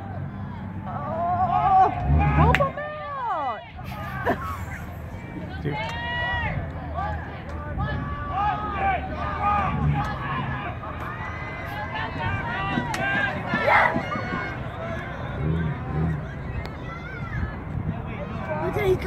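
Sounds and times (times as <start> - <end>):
people shouting and calling out: 0.0 - 19.0.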